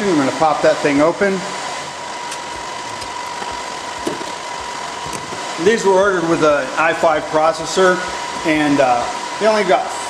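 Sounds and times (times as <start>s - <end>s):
server fans whirring: 0.0s - 10.0s
steady whine: 0.0s - 10.0s.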